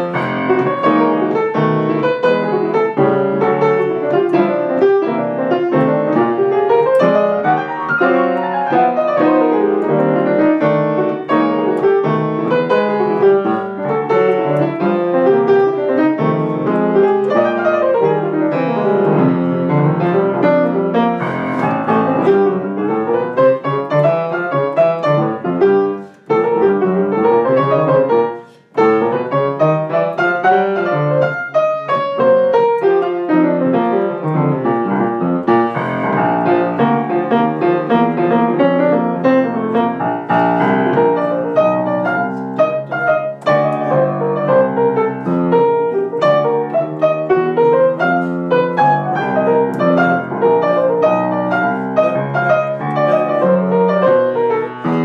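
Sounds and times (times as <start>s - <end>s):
solo jazz piano: 0.0s - 55.0s.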